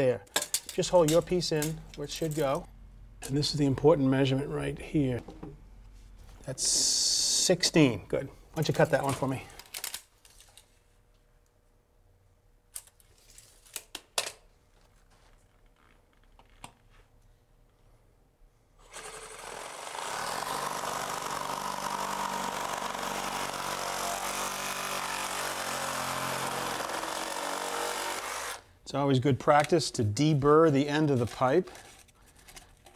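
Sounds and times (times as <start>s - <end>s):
reciprocating saw cutting pipe: 18.8s - 28.6s.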